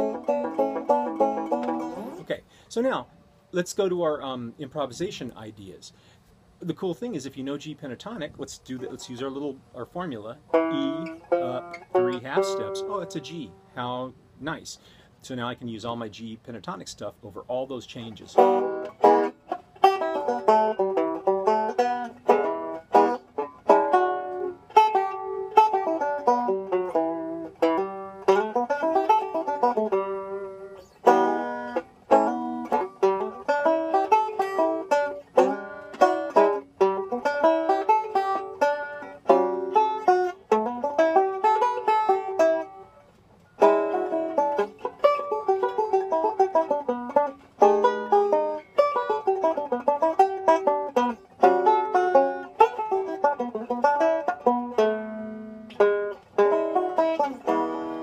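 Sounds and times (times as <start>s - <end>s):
fingerpicked banjo blues: 0.0s - 58.0s.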